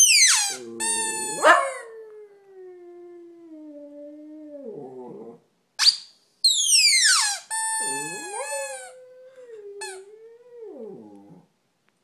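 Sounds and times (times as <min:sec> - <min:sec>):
dog howling: 0:00.8 - 0:02.2.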